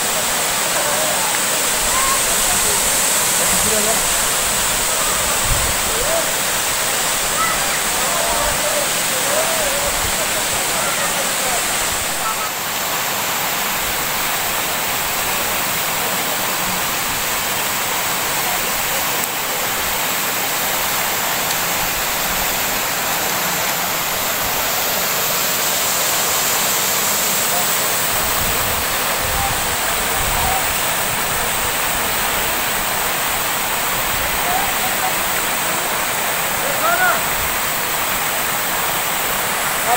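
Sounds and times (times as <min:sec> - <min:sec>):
waterfall rushing into pool: 0:00.0 - 0:39.9.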